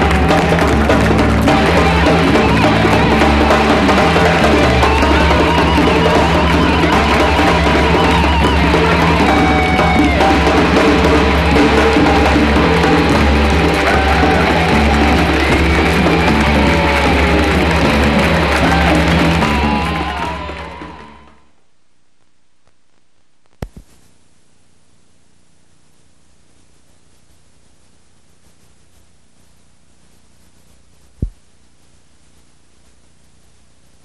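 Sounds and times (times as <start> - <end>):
drum kit: 0.0 - 21.4
rock band playing: 0.0 - 21.4
electric guitar: 0.0 - 21.5.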